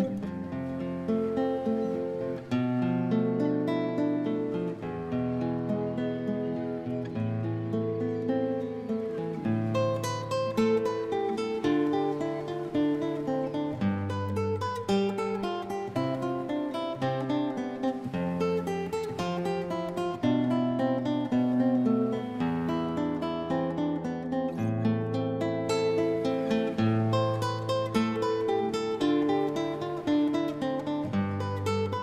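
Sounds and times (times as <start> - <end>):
solo acoustic guitar piece: 0.0 - 32.0.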